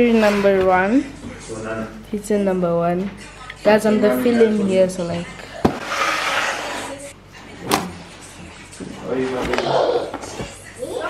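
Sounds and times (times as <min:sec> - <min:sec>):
cardboard box scraping on countertop: 0:00.0 - 0:00.8, 0:05.6 - 0:07.1.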